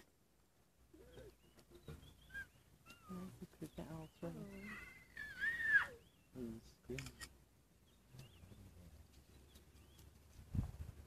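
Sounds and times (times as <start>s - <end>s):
faint animal calls: 0.9s - 6.2s.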